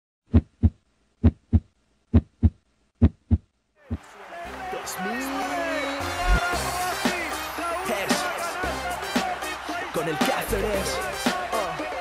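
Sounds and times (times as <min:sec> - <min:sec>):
heartbeat thumps: 0:00.3 - 0:03.5, 0:06.2 - 0:06.4.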